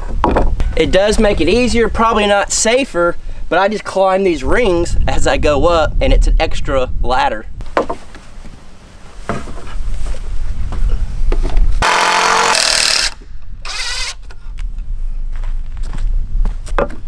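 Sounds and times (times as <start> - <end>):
knocks of wood handled: 7.6 - 8.2
cordless drill driving screw: 11.8 - 14.3.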